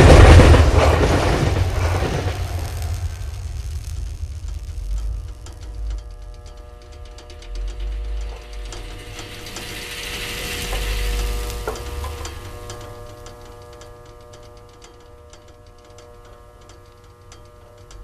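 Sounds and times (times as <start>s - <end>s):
hiss: 0.0s - 6.0s, 7.6s - 13.5s
rapid mechanical clicking: 0.0s - 18.0s
steady hum: 0.0s - 18.0s.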